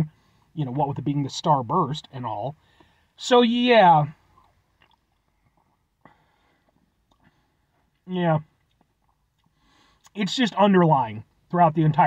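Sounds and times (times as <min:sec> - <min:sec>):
sipping and swallowing: 0:04.4 - 0:06.0.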